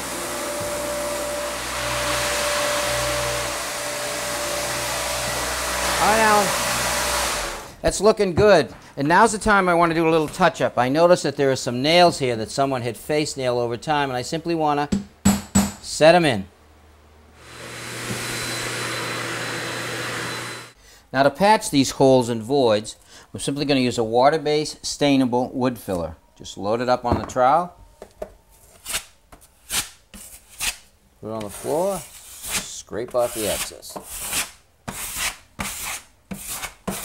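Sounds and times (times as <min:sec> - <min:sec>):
electric motor humming: 0:00.0 - 0:07.7, 0:17.4 - 0:20.8
drywall knife scraping floor: 0:28.6 - 0:37.0.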